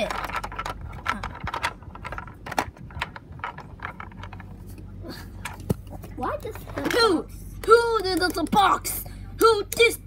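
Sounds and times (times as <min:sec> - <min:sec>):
plastic toy parts clicking: 0:00.0 - 0:04.6.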